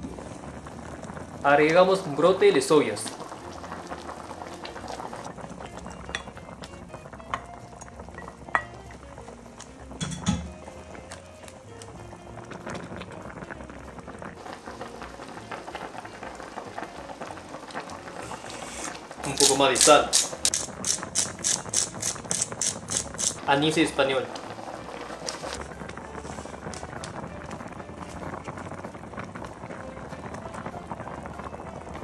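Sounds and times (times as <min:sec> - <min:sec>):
broth bubbling at a boil: 0:00.0 - 0:32.0.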